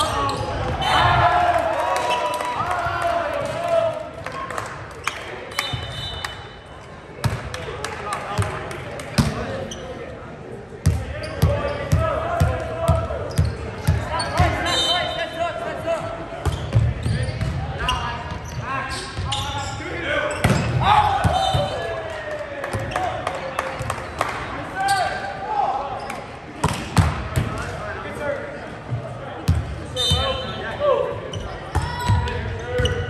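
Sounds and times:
players' voices and shouts echoing: 0:00.0 - 0:33.0.

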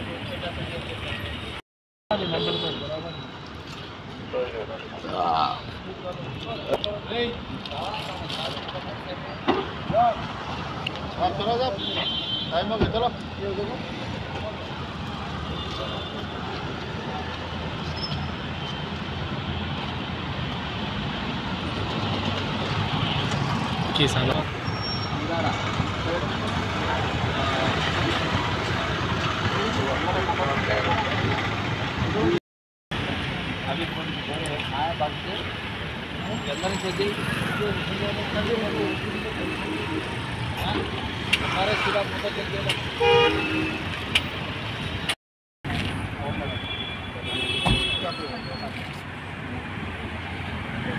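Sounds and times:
road noise: 0:00.0 - 0:50.9.

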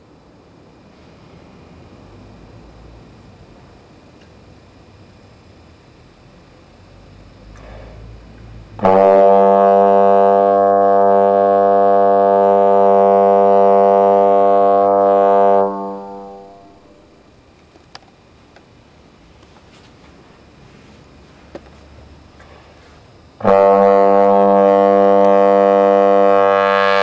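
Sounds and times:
trombone long note: 0:08.8 - 0:17.1, 0:23.4 - 0:27.0.

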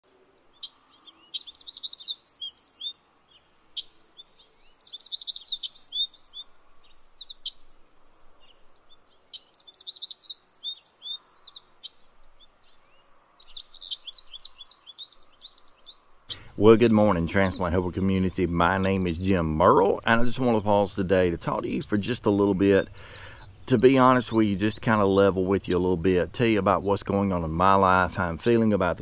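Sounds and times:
songbirds chirping: 0:00.0 - 0:29.0.

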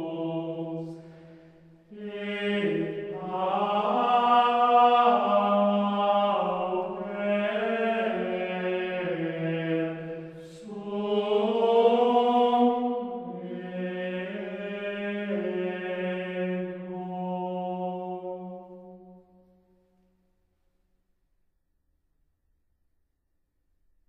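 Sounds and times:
voices singing chant: 0:00.0 - 0:18.7.

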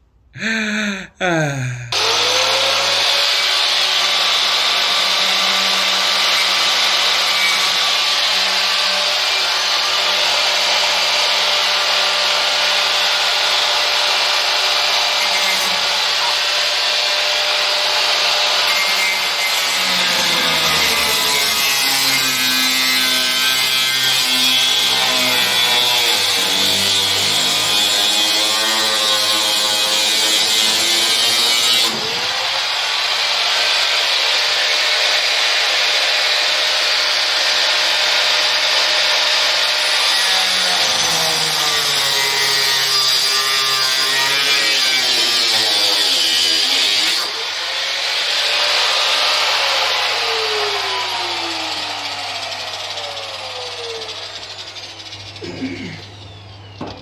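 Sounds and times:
angle grinder cutting steel: 0:01.8 - 0:57.0.

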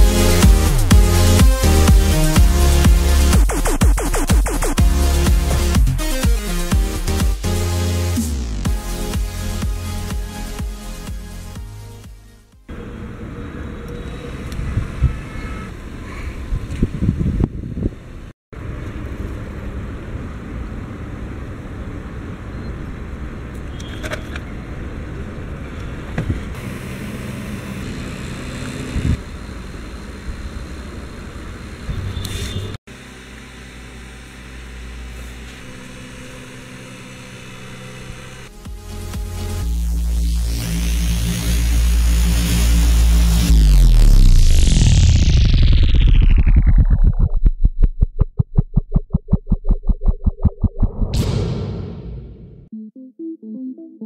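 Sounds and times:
small fan motor whirring: 0:33.0 - 0:38.5.

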